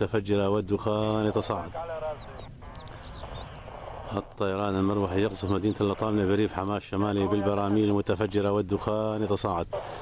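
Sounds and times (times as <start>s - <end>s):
birds chirping: 0.0s - 10.0s
low background noise: 0.0s - 10.0s.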